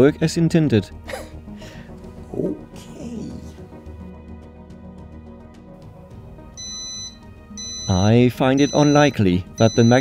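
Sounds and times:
microwave oven beeping: 0:06.6 - 0:10.0.

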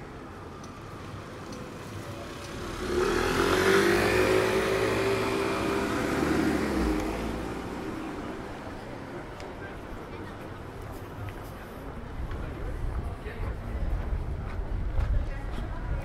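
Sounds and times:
sports car passing on wet street: 0:02.3 - 0:08.3.

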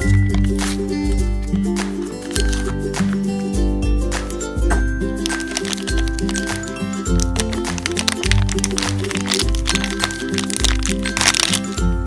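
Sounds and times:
background music: 0:00.0 - 0:12.0
plastic bag crinkling: 0:02.3 - 0:02.7, 0:05.2 - 0:11.8.

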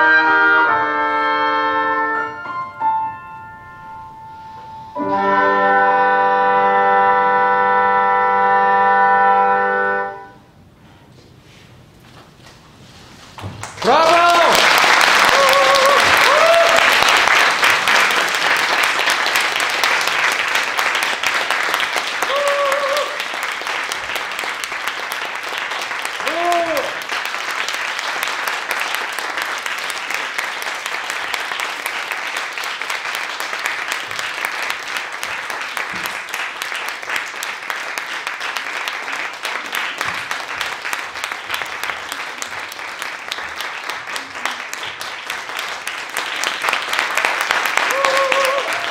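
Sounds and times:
audience applauding: 0:13.4 - 0:48.9.

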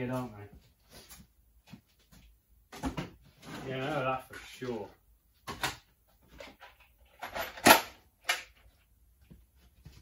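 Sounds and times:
tools and metal clattering: 0:05.4 - 0:08.8.

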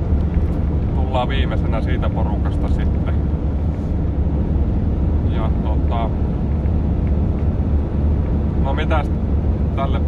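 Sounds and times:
van engine and tyres droning: 0:00.0 - 0:10.0.

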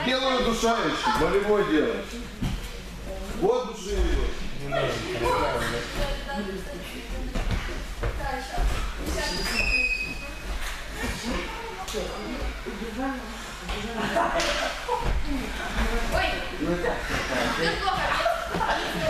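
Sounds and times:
children talking and calling: 0:00.0 - 0:03.1, 0:04.6 - 0:19.0
high squeak: 0:09.1 - 0:10.4.

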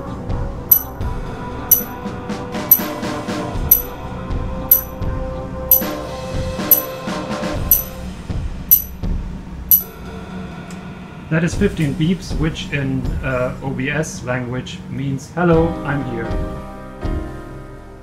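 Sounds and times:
background music: 0:00.0 - 0:13.8, 0:15.5 - 0:18.0
short high-pitched beeps: 0:00.7 - 0:01.0, 0:06.7 - 0:06.9, 0:07.7 - 0:08.0.

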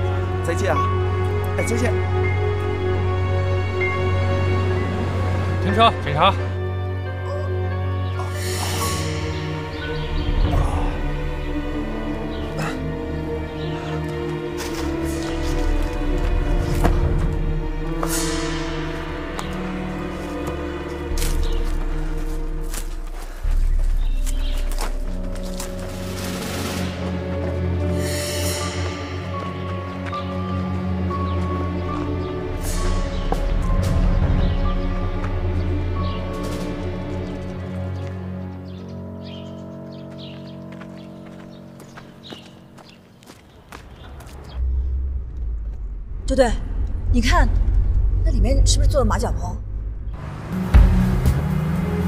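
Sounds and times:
tense held chords: 0:00.0 - 0:43.2, 0:44.5 - 0:52.0
footsteps on a road: 0:13.7 - 0:18.3, 0:19.3 - 0:34.5, 0:35.1 - 0:44.7
car engine rumble: 0:44.0 - 0:52.0.

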